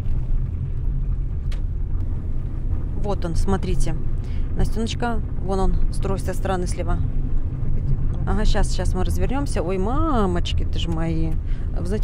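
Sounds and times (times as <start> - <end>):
car driving rumble: 0.0 - 12.0.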